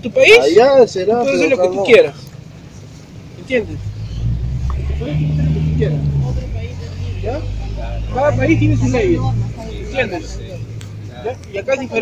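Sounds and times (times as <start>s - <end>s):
voices: 0.0s - 12.0s
vehicle engine rumbling: 2.1s - 12.0s.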